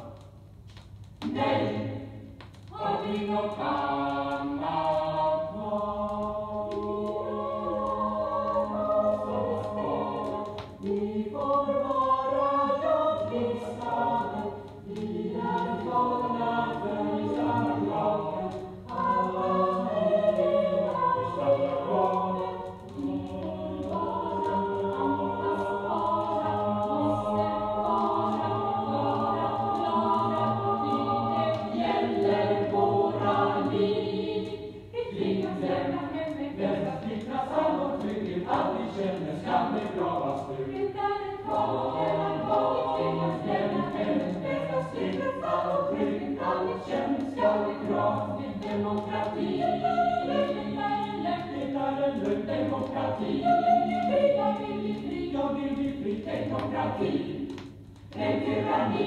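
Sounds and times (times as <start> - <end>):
choir singing: 1.2 - 59.0.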